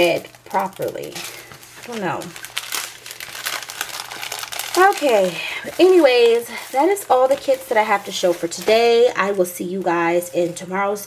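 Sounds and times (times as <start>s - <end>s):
canvas and paper crinkling: 0.0s - 11.0s.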